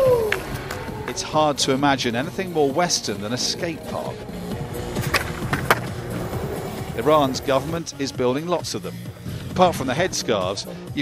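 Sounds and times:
background music: 0.0 - 11.0
skateboard wheels rolling on concrete: 0.0 - 11.0
skateboard clacks: 4.8 - 6.5.

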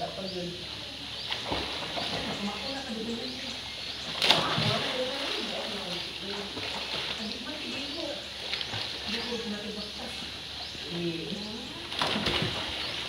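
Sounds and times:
birds chirping: 0.0 - 13.0
faint voices: 0.0 - 13.0
child splashing in pool: 4.2 - 7.2, 11.9 - 13.0.

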